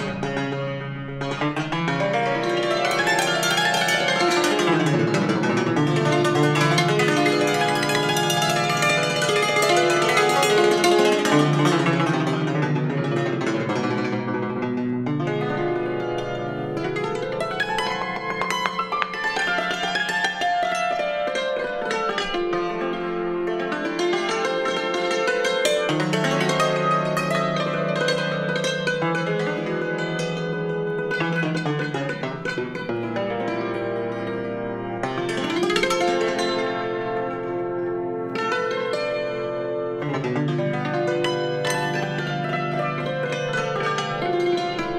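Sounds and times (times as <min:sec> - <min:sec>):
cimbalom playing: 0:00.0 - 0:44.9.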